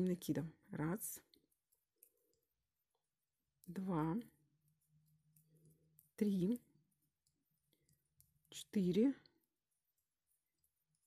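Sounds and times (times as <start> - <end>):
woman speaking: 0.0 - 1.3, 3.6 - 4.4, 6.2 - 6.7, 8.5 - 9.4.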